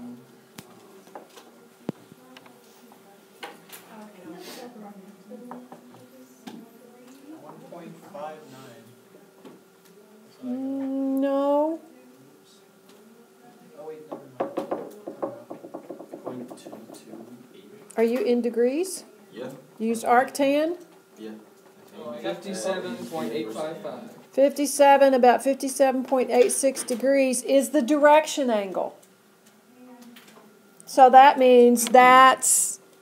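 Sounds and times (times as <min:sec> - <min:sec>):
faint indistinct voices: 0:00.0 - 0:15.7, 0:29.5 - 0:30.7
faint steady hum: 0:00.0 - 0:33.0.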